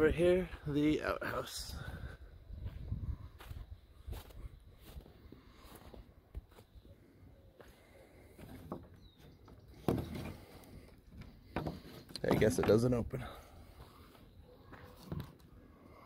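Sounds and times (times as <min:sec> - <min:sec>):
footsteps on snow and grass: 0:02.5 - 0:06.8.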